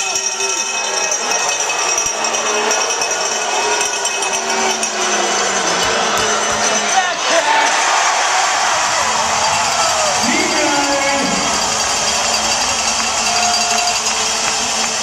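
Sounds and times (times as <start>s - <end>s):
crowd chattering and calling out: 0.0s - 15.0s.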